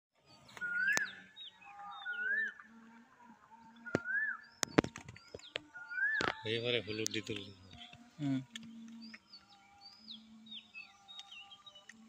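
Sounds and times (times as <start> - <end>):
high bird chirps: 0.3 - 2.8, 3.7 - 12.0
bird whistling: 0.6 - 2.7, 3.8 - 4.8, 5.4 - 7.9.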